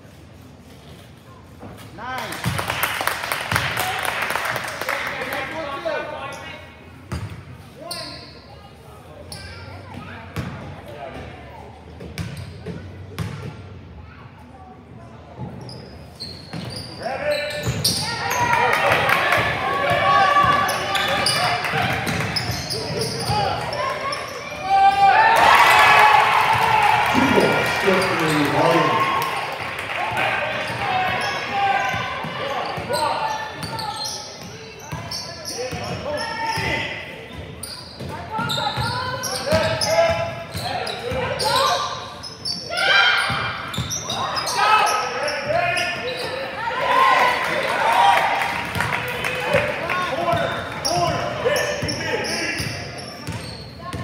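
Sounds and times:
shouts echoing in gym: 0:17.0 - 0:34.9, 0:35.5 - 0:37.3, 0:38.1 - 0:53.2.

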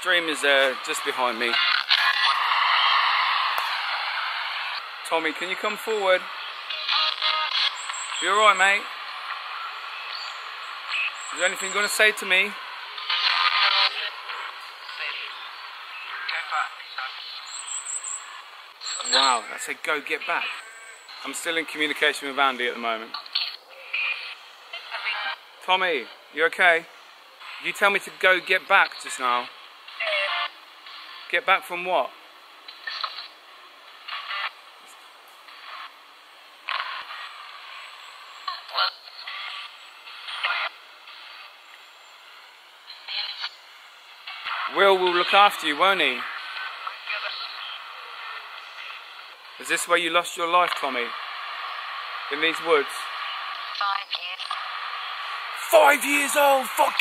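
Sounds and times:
radio static burst: 0:00.0 - 0:26.0, 0:27.4 - 0:31.9, 0:32.7 - 0:34.7, 0:35.5 - 0:36.0, 0:36.6 - 0:57.0
steady radio hiss: 0:00.0 - 0:57.0
clipped radio voice fragments: 0:06.7 - 0:08.8, 0:13.1 - 0:15.3, 0:18.9 - 0:20.7, 0:55.2 - 0:57.0
chopped snatches of voice: 0:55.6 - 0:57.0.

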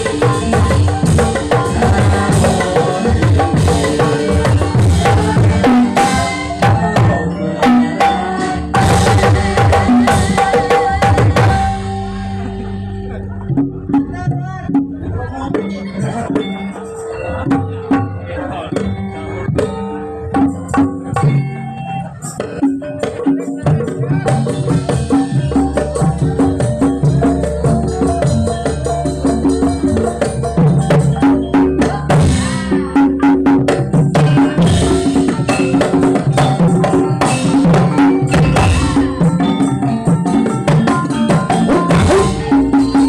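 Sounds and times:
gamelan struck notes: 0:00.0 - 0:43.0
hand drum strokes: 0:17.4 - 0:43.0.

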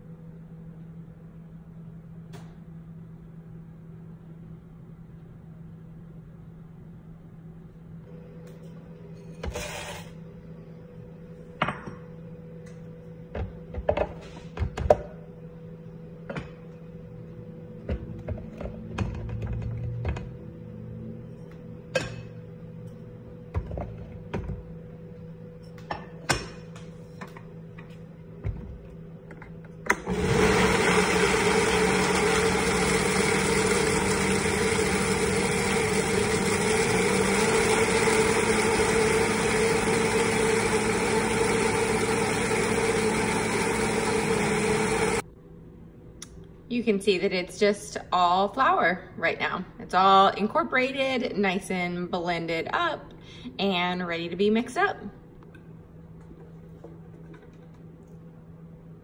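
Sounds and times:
blender grinding: 0:29.9 - 0:45.2.

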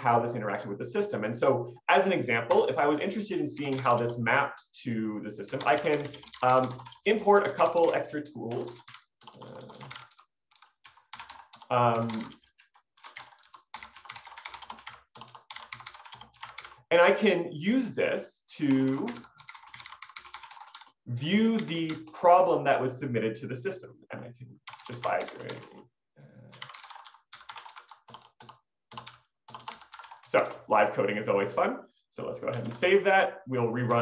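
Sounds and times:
computer keyboard typing: 0:02.4 - 0:04.2, 0:05.3 - 0:16.9, 0:18.7 - 0:22.1, 0:24.6 - 0:25.8, 0:26.5 - 0:30.7, 0:32.4 - 0:33.0.

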